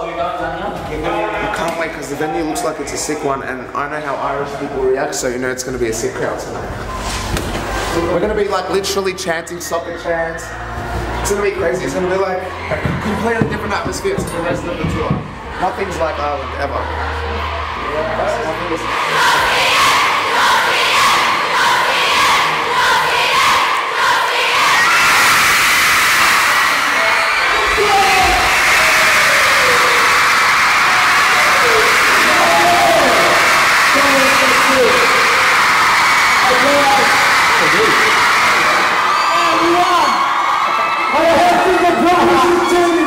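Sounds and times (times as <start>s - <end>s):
crowd cheering and screaming: 6.6s - 43.0s.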